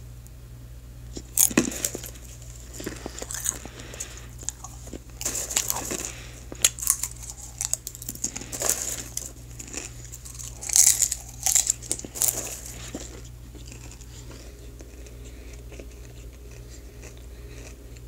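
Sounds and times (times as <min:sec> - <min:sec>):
popcorn crunching: 0:01.1 - 0:18.0.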